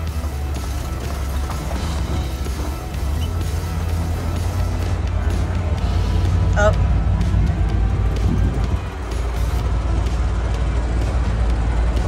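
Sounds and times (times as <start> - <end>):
background music: 0.0 - 12.0
jeep engine rumbling: 0.0 - 12.0.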